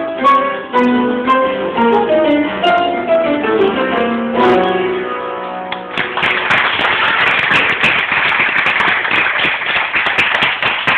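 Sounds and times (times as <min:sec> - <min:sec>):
audience applauding: 0:05.8 - 0:10.9.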